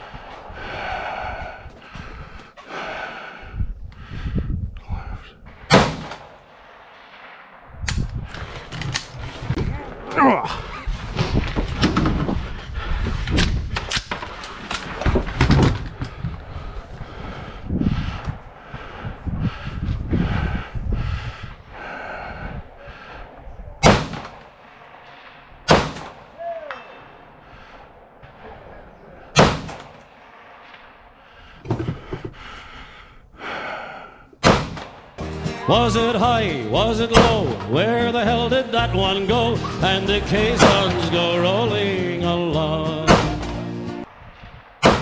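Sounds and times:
rifle shots: 5.7s - 7.8s, 23.8s - 24.7s, 25.7s - 26.3s, 29.4s - 31.0s, 34.4s - 35.1s, 37.2s - 37.7s, 40.4s - 41.2s, 43.1s - 43.7s, 44.8s - 45.0s
knocks and clunks: 11.1s - 12.6s, 13.2s - 16.4s, 31.6s - 32.5s.

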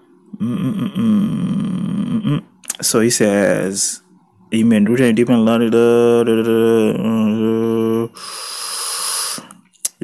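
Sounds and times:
man humming a low note: 0.3s - 2.5s, 5.8s - 8.2s.

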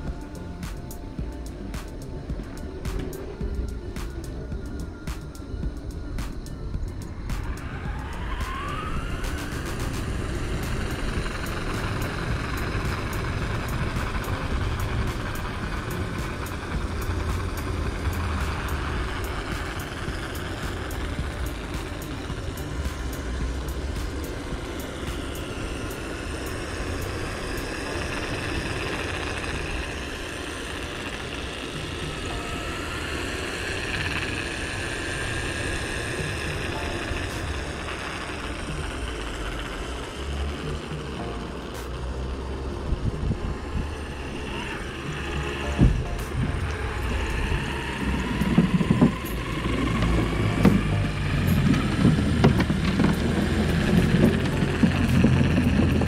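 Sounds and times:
faint motor whine: 0.0s - 56.0s
road noise: 0.0s - 56.0s
wind rumbling on microphone: 42.6s - 56.0s.

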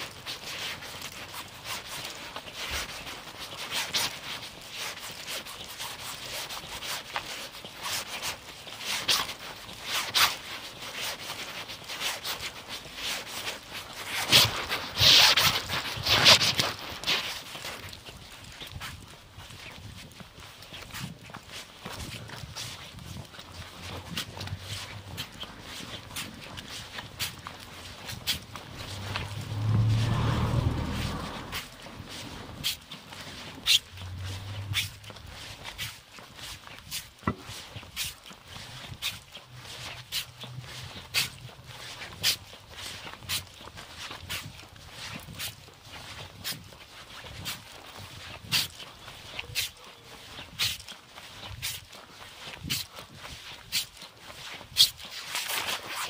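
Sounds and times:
footsteps on pavement: 0.0s - 56.0s
low rumble: 28.4s - 32.6s.

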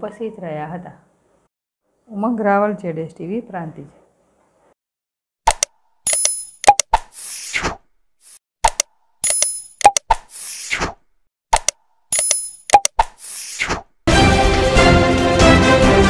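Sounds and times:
sharp mouse clicks: 5.5s - 7.3s, 8.6s - 10.9s, 11.5s - 13.8s.

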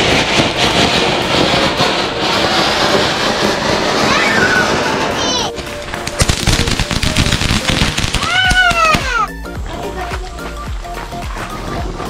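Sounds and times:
loud crackling pops: 0.0s - 9.2s.

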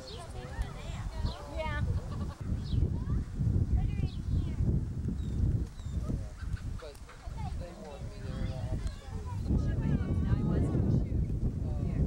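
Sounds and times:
people's voices: 0.0s - 4.7s, 5.9s - 12.0s.

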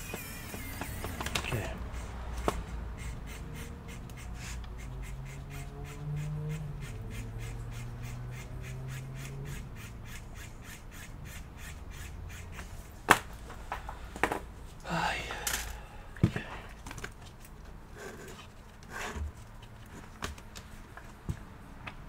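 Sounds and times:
hand tool scraping plastic: 16.3s - 20.4s.

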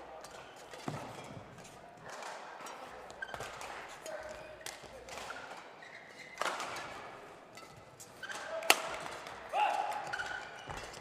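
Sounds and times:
shoes squeaking on floor: 3.1s - 3.8s, 5.2s - 6.5s, 10.0s - 11.0s.

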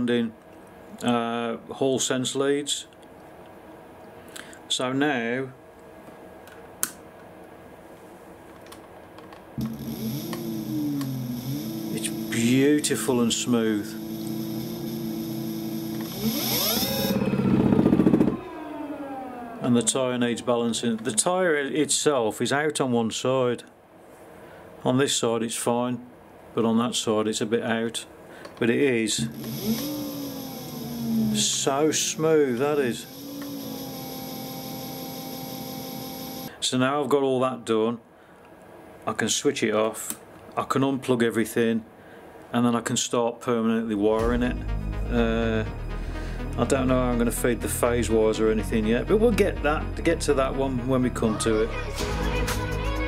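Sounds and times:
electric motor whine: 9.6s - 20.2s, 29.2s - 36.5s.

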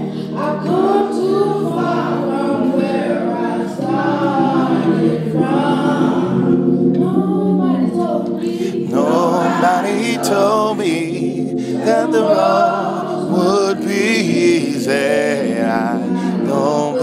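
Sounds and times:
boy singing gospel song: 0.0s - 17.0s
steady held notes: 0.0s - 17.0s.

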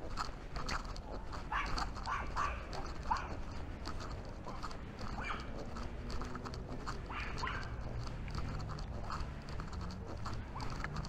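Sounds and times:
walking footsteps: 0.0s - 11.0s.

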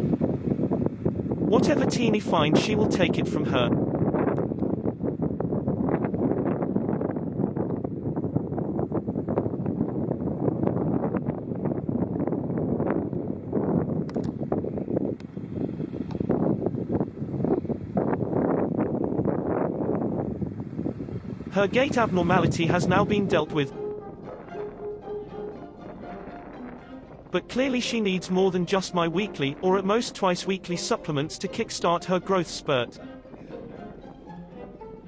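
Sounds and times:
wind buffeting microphone: 0.0s - 31.6s.

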